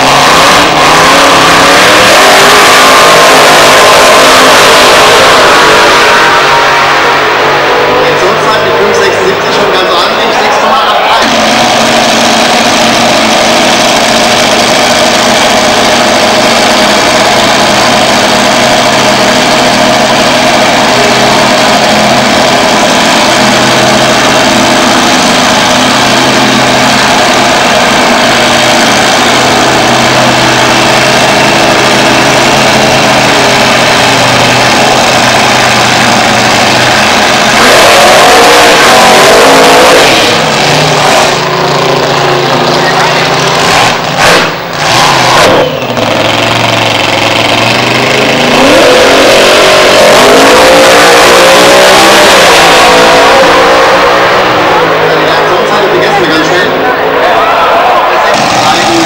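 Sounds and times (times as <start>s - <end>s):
drag racing car engine: 0.0s - 59.0s.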